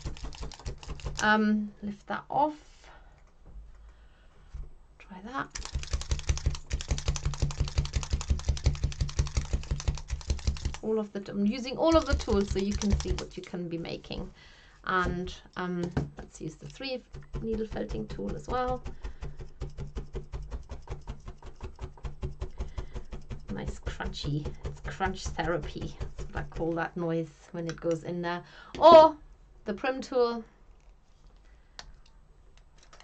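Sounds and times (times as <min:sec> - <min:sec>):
felting needles stabbing into wool: 0:05.4 - 0:10.9, 0:11.6 - 0:13.4, 0:15.0 - 0:26.9.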